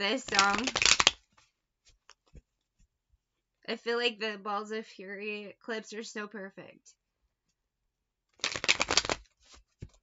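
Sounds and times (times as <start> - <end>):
cards riffling: 0.3 - 1.4, 8.4 - 10.0.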